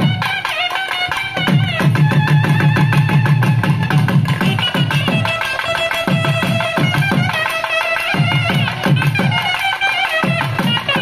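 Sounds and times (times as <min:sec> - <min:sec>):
rapid drum strokes: 0:00.0 - 0:11.0.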